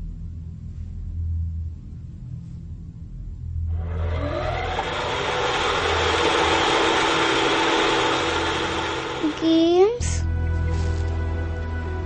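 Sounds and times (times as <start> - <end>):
low pulsing drone: 0.0 - 12.0
loud mechanical engine noise: 3.6 - 10.2.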